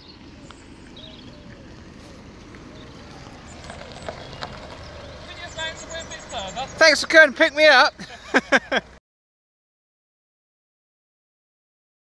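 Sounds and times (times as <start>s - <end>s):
van engine and tyre noise: 0.0s - 9.0s
man's voice: 5.2s - 8.1s.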